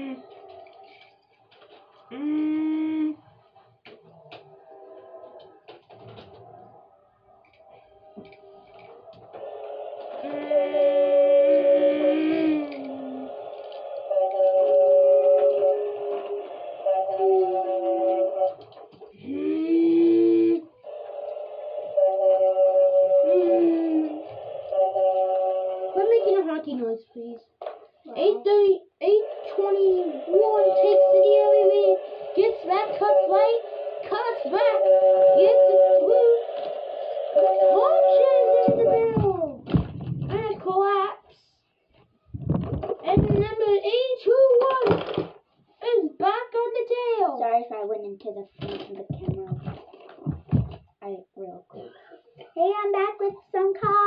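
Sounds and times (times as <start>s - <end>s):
child humming: 0.0s - 0.4s, 2.1s - 3.3s, 10.2s - 13.4s, 15.1s - 18.6s, 19.2s - 20.8s, 22.9s - 24.4s.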